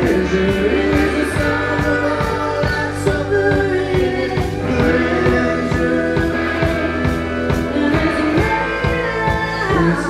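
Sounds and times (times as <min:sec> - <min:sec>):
drum beat: 0:00.0 - 0:10.0.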